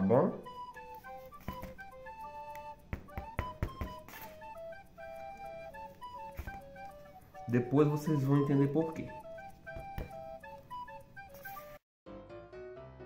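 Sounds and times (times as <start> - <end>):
flute-like background music: 0.0 - 11.8.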